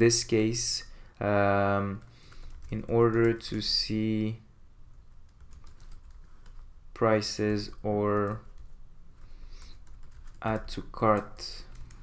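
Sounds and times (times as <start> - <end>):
computer keyboard typing: 1.9 - 3.9, 5.2 - 6.7, 7.3 - 8.8, 9.6 - 12.0.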